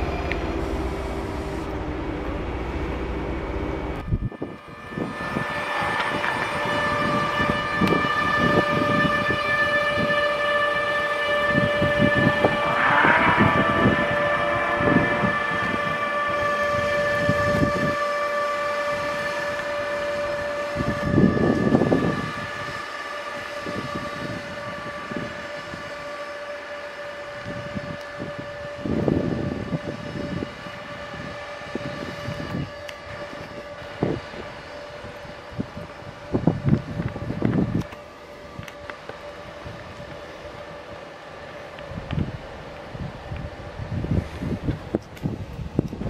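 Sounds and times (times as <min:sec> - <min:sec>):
electric locomotive whine: 0:00.0 - 0:46.0.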